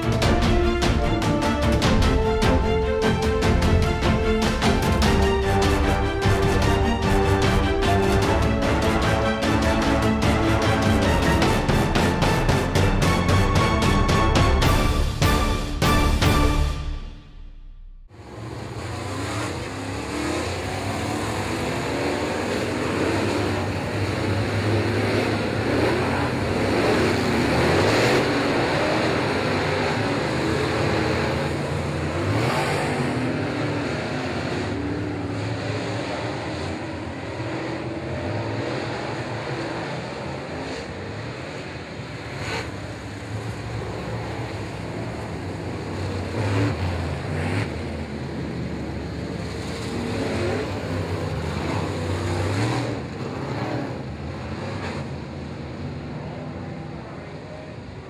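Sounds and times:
race car engines revving: 0.0s - 16.8s, 18.1s - 58.0s.

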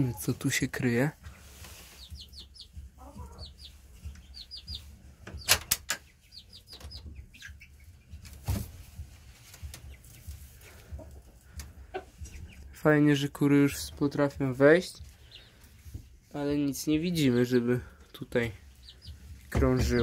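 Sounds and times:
chickens clucking: 0.0s - 20.0s.

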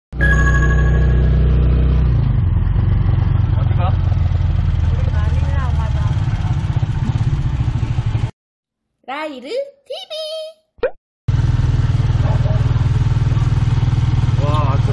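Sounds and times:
motorcycle engine running: 0.2s - 8.3s, 11.3s - 14.9s.

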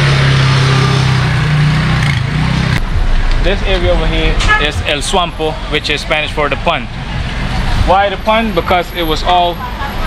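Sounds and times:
street noise: 0.0s - 10.0s
vehicle engine humming: 0.0s - 10.0s.

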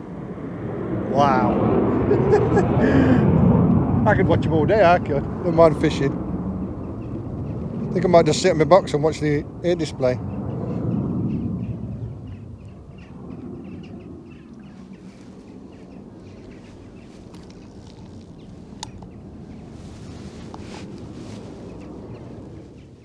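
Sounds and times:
aircraft rumble overhead: 0.0s - 23.0s
wind noise: 0.0s - 23.0s.

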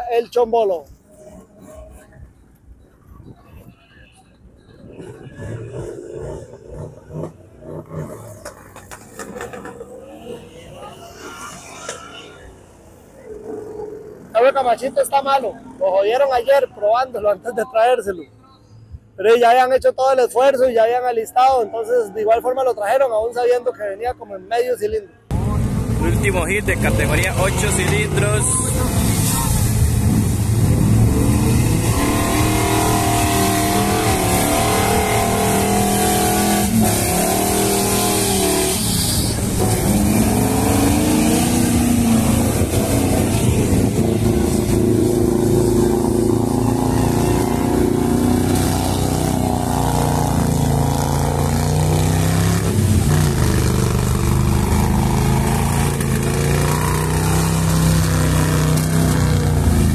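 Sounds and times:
truck driving through mud: 25.3s - 59.9s
truck engine revving hard: 25.3s - 59.9s.

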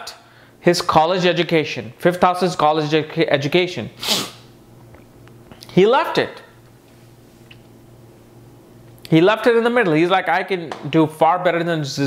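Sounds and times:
man speaking: 0.0s - 4.0s, 5.6s - 6.6s, 9.1s - 12.0s
man puffing breath: 4.0s - 4.4s.

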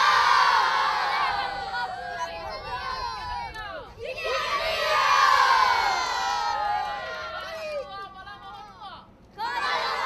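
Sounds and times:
children cheering and shouting: 0.0s - 7.9s, 9.4s - 10.0s.

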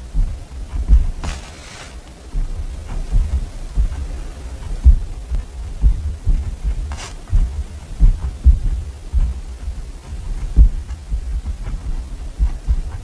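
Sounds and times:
pen scratching: 1.0s - 2.0s, 6.8s - 7.3s
pen writing on paper: 1.2s - 2.0s.

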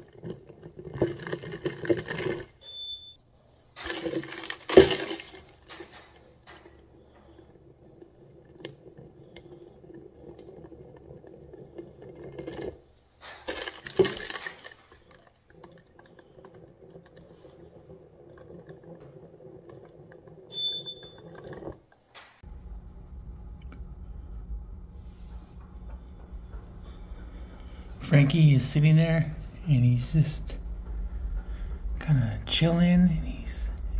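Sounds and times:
faint steady hum: 14.8s - 33.9s
low steady rumble: 22.4s - 33.9s.

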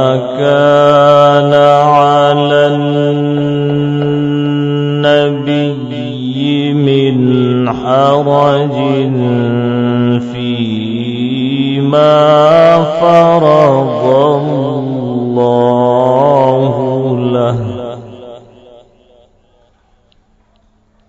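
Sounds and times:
man chanting melodically: 0.0s - 20.0s.

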